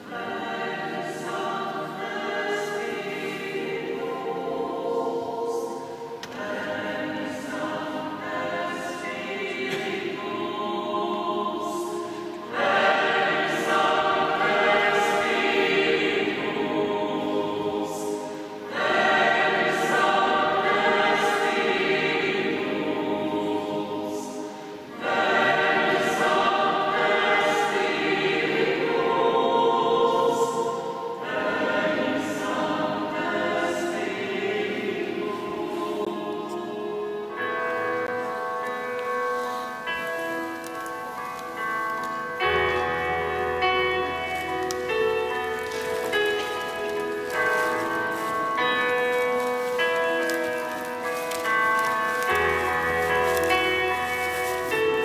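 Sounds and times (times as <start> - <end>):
choir singing sacred music: 0.0 - 55.0.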